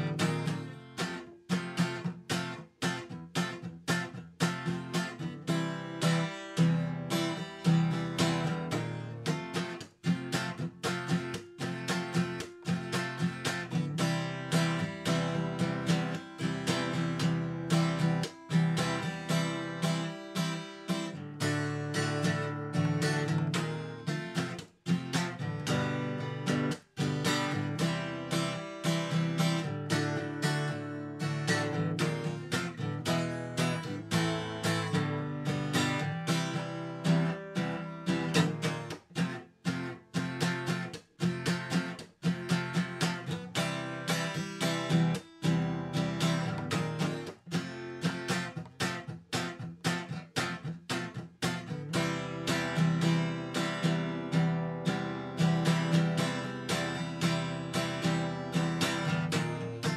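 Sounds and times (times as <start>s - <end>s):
acoustic guitar strumming: 0.0s - 59.9s.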